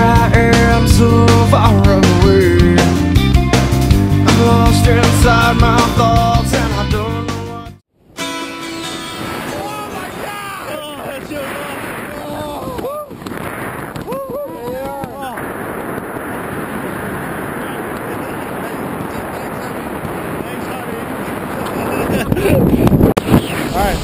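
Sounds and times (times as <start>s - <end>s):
wind buffeting microphone: 9.0s - 24.0s
person whooping: 12.1s - 13.2s, 14.0s - 15.4s.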